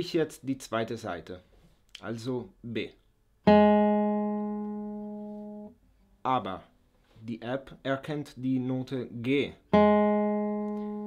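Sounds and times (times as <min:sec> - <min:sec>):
acoustic guitar note plucked: 0:03.5 - 0:05.8, 0:09.7 - 0:11.0.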